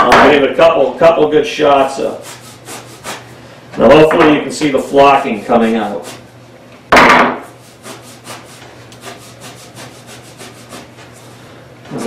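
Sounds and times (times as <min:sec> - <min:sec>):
hand pump strokes: 0:02.2 - 0:03.3, 0:05.8 - 0:06.2, 0:07.4 - 0:11.4.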